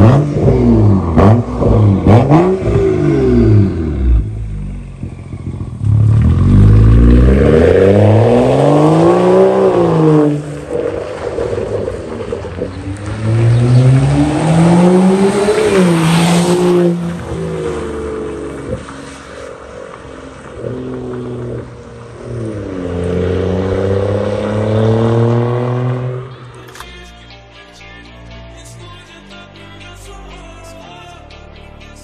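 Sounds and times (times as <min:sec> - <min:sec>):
car engine accelerating hard: 0:00.0 - 0:26.5.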